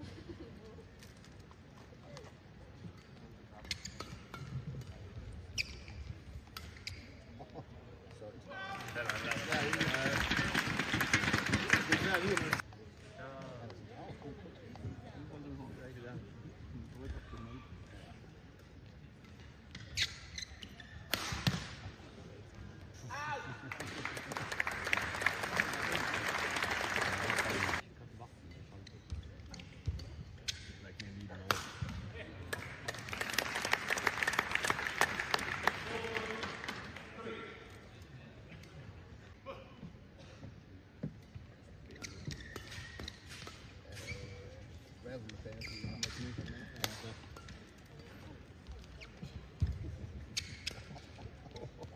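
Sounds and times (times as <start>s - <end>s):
shoes squeaking on court: 3.2s - 7.4s, 19.3s - 21.1s, 41.0s - 51.2s.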